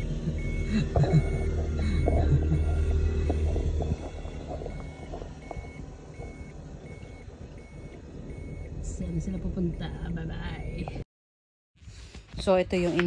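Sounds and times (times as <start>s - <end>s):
background music: 0.0s - 5.8s.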